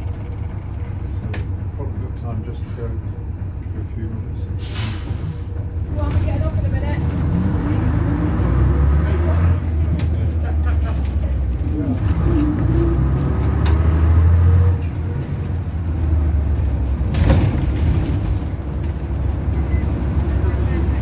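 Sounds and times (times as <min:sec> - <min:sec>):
bus diesel engine: 0:00.0 - 0:21.0.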